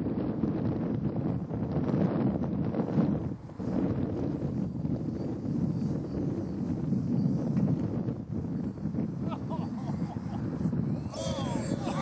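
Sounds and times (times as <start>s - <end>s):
gusty wind on microphone: 0.0s - 12.0s
model airplanes droning: 0.0s - 12.0s.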